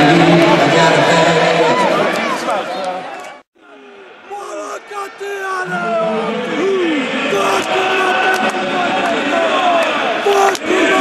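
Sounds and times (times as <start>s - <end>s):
men shouting a war chant: 4.3s - 11.0s.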